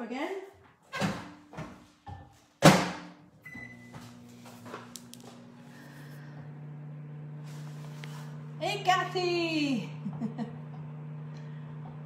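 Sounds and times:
microwave humming: 0:00.8 - 0:12.0.

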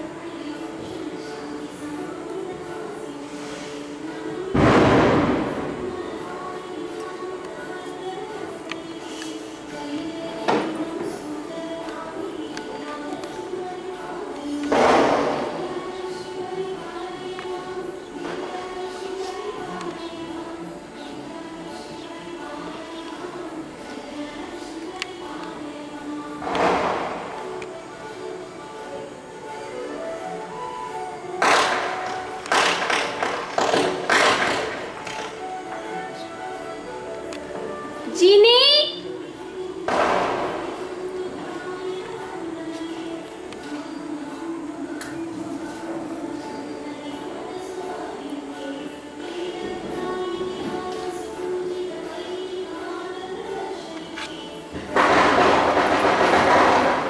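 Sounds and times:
firecrackers banging: 0:04.5 - 0:06.0, 0:54.9 - 0:57.0.

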